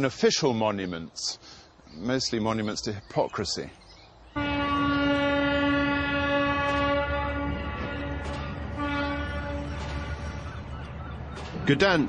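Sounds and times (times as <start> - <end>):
horn long steady note: 4.4 - 11.3.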